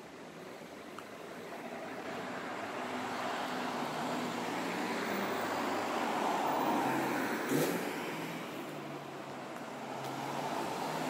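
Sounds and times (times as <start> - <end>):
vehicle passing by: 9.8 - 11.0.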